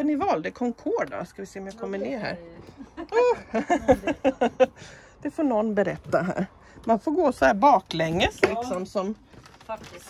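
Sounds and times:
person laughing: 2.8s - 4.8s.

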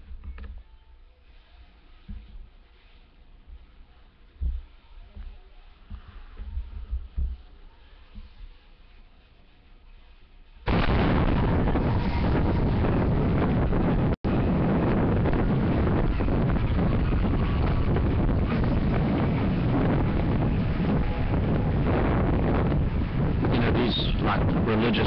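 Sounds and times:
wind buffeting microphone: 10.7s - 25.0s.

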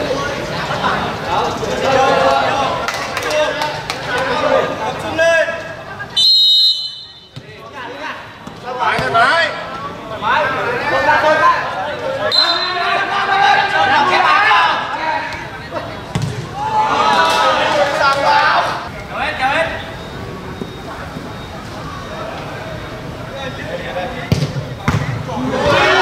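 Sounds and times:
men talking and shouting: 0.0s - 26.0s
football being kicked: 16.1s - 16.5s, 24.3s - 25.2s.

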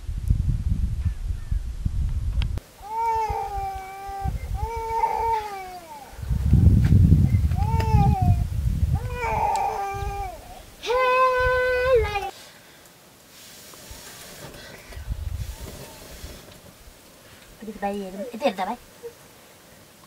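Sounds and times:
wind rumble on microphone: 0.0s - 12.3s, 14.8s - 17.0s.

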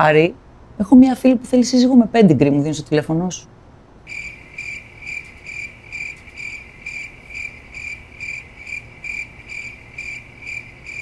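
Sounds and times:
cricket chirping: 4.1s - 11.0s.

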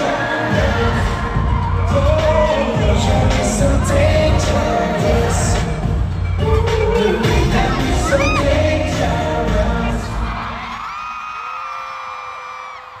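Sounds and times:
live pop music with vocals: 0.0s - 11.3s
audience screaming and cheering: 0.0s - 13.0s.

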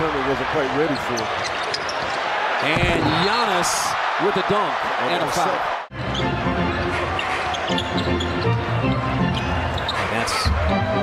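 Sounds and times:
arena music: 5.9s - 11.0s.

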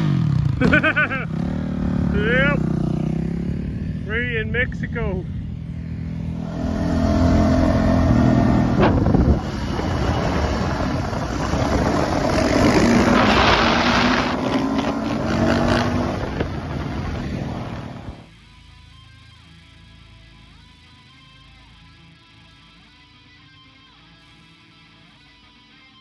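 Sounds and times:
dirt bike engine revving: 0.0s - 4.4s, 5.5s - 18.3s.

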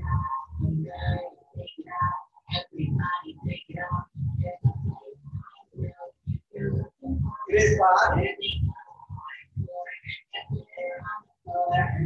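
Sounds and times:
low indistinct voice: 6.6s - 12.0s.

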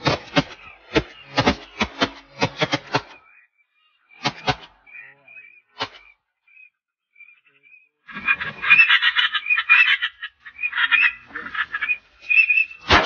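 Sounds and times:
ducks quacking: 7.2s - 13.0s.

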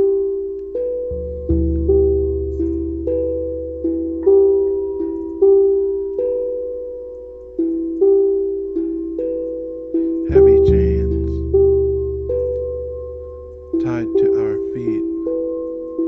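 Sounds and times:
steel tongue drum melody: 0.0s - 16.0s
low drum tone: 1.1s - 6.0s, 10.2s - 15.5s.

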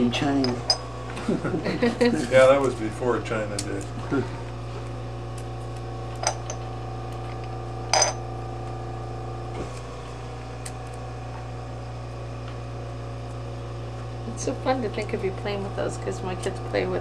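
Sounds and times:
steady low hum: 0.0s - 17.0s
china dishes clinking: 0.3s - 0.9s, 6.2s - 6.6s, 7.9s - 8.2s.

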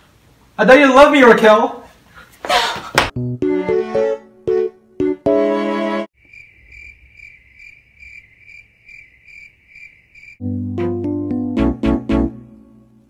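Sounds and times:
music: 3.1s - 6.1s, 10.4s - 13.0s
keyboard chord: 3.2s - 6.1s, 10.4s - 13.0s
cricket chirping: 6.2s - 10.4s.

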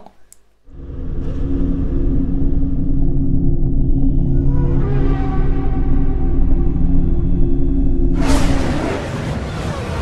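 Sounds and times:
deep low rumble with drone: 0.7s - 10.0s.

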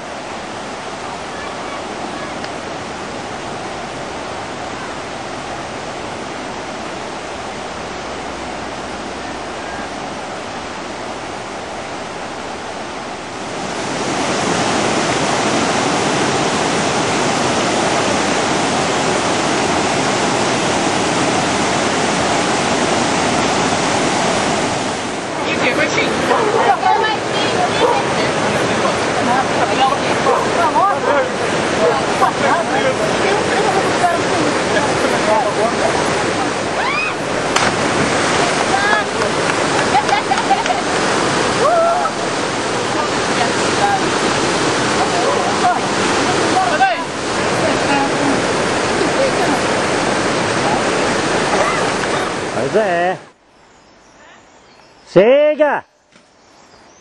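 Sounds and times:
voices calling out: 25.2s - 53.3s.

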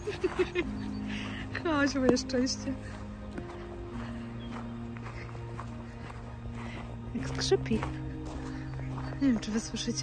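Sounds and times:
background music with held notes: 0.0s - 10.0s
footsteps crunching on snow: 0.0s - 10.0s.

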